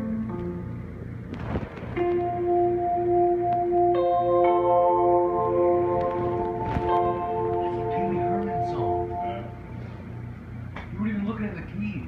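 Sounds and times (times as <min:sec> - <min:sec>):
bell-like drone: 0:02.0 - 0:10.3.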